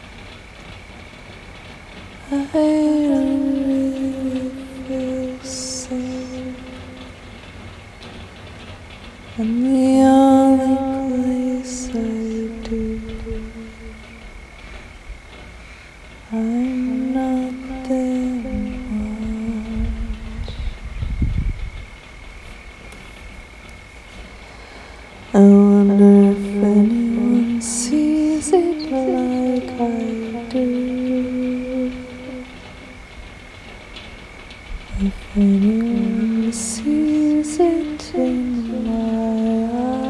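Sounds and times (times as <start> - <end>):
faint high whine: 0.0 - 40.0.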